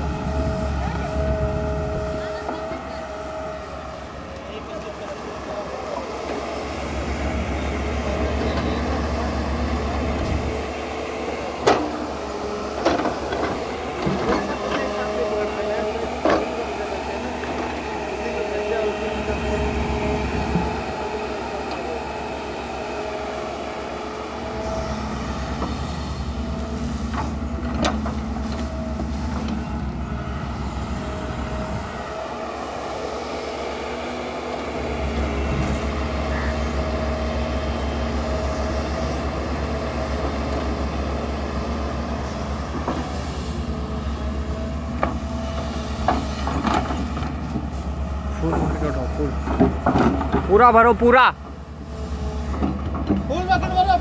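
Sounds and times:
excavator diesel rumble: 0.0s - 54.0s.

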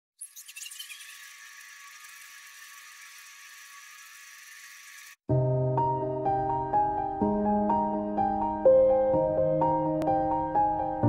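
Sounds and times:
high-pitched sparkling chirps: 0.2s - 2.3s
piano background music: 5.3s - 11.0s.

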